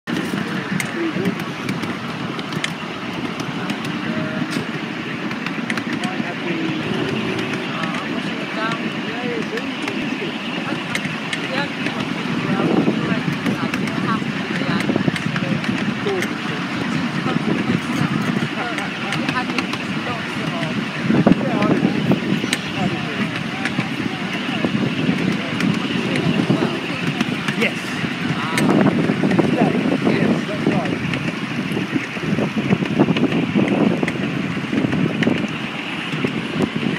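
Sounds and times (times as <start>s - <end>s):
indistinct chatter of voices: 0.0s - 36.9s
outdoor background noise: 0.0s - 36.9s.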